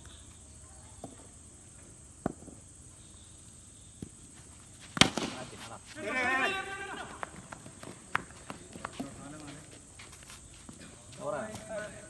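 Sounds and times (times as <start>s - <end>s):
feet running on dirt: 4.8s - 12.0s
man shouting: 6.0s - 7.2s.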